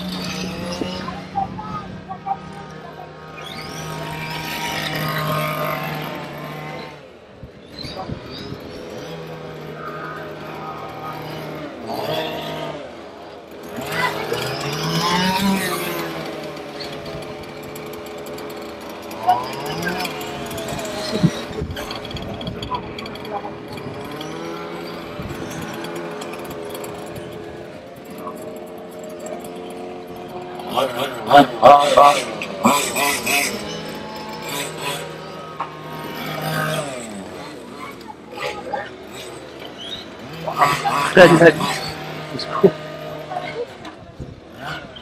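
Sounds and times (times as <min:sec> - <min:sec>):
radio-controlled car motor: 0:00.0 - 0:45.0.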